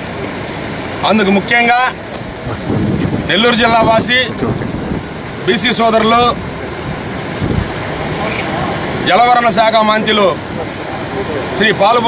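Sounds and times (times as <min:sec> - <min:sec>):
man speaking: 0:01.0 - 0:04.7, 0:05.4 - 0:06.4, 0:08.0 - 0:12.0
wind rumbling on microphone: 0:02.2 - 0:08.7.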